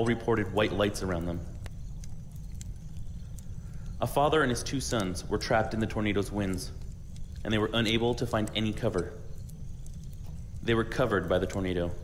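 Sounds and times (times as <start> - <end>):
low rumble: 0.0 - 12.0
wood fire crackling: 0.0 - 12.0.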